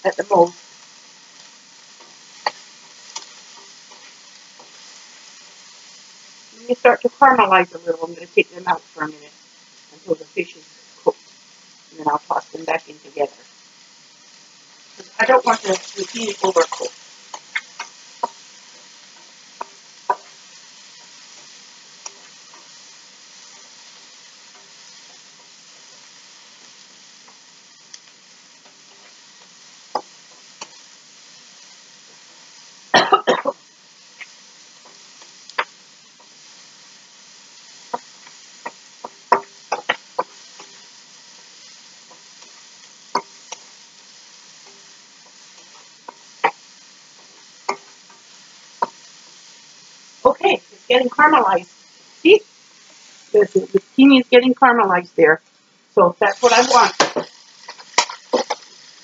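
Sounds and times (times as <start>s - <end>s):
vegetables sizzling in a wok: 0.0s - 59.0s
wooden spatula knocking wok: 19.2s - 20.4s, 37.9s - 40.7s, 56.4s - 58.7s.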